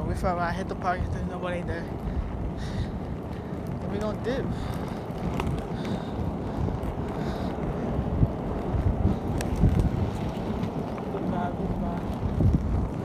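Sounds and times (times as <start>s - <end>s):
skate wheels rolling on asphalt: 0.0s - 13.0s
wind buffeting microphone: 0.0s - 13.0s.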